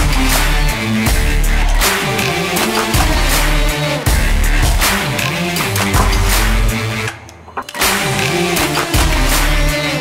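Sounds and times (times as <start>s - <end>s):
electronic music with heavy beat: 0.0s - 10.0s.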